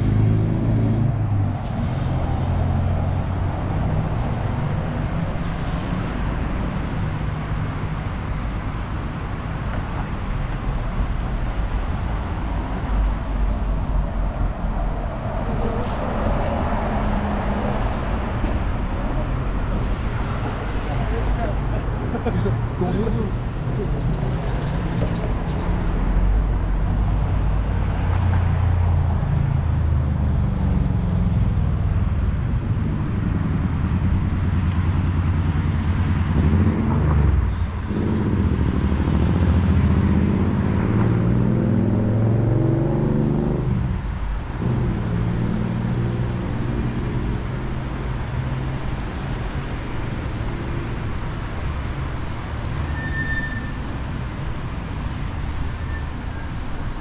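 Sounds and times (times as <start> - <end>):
cars driving past: 0.0 - 57.0
engine rising and falling in pitch: 32.8 - 43.9.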